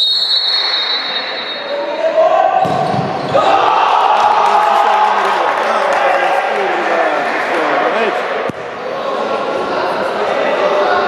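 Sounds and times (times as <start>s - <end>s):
people shouting in echoing hall: 1.0s - 8.2s.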